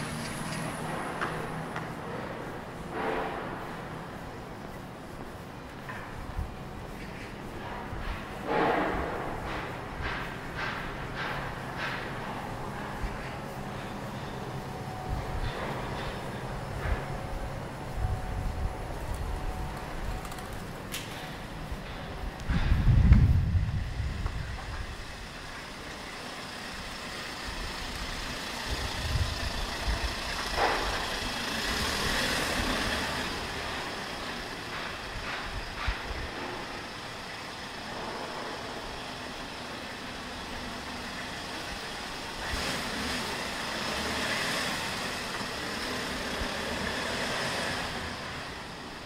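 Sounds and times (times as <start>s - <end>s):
vehicles passing: 0.0s - 49.0s.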